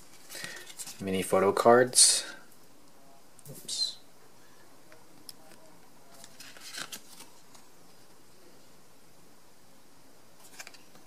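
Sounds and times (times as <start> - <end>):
paper cards rustling: 0.0 - 1.3, 5.3 - 8.1, 10.4 - 11.0.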